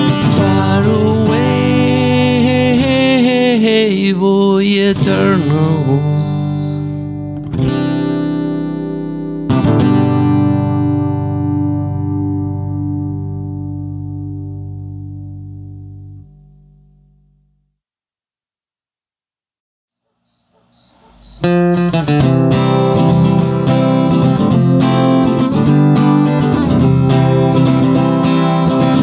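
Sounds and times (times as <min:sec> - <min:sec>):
person singing: 0:00.0 - 0:07.2
acoustic guitar chords: 0:00.0 - 0:17.9, 0:20.9 - 0:29.0.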